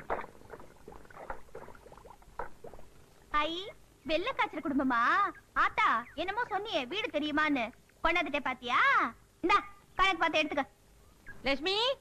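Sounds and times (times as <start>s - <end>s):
liquid boiling with bubbling pops: 0.0s - 3.3s.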